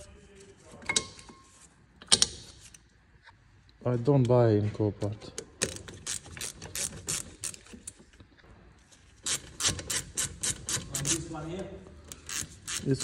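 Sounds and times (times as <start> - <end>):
hand ratchet clicking: 5.5 - 8.0, 9.2 - 11.3, 12.0 - 13.0.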